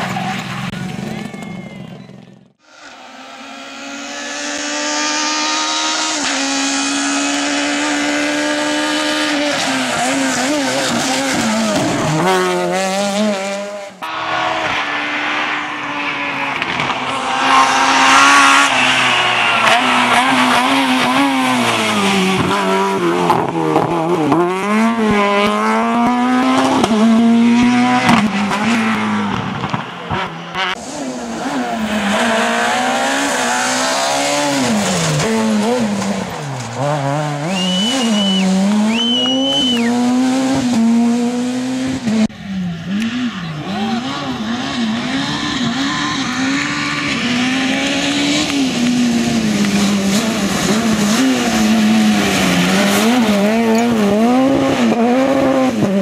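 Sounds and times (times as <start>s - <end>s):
rally car engines revving: 0.0s - 56.0s
tyre squeal: 37.4s - 40.0s.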